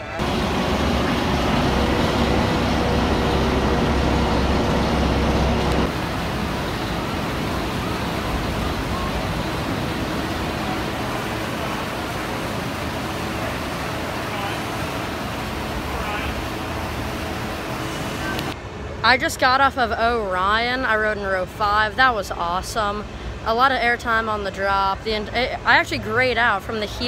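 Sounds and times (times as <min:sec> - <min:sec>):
outdoor noise: 0:00.0 - 0:27.0
roller coaster lift hill hum: 0:00.0 - 0:27.0.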